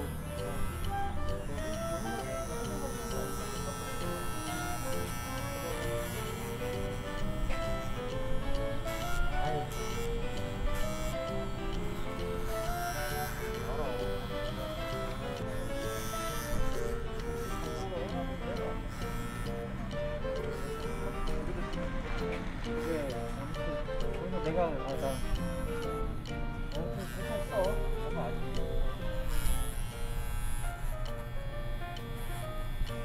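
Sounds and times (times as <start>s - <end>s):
background music: 0.0s - 33.0s
electric hair clippers buzzing: 0.0s - 33.0s.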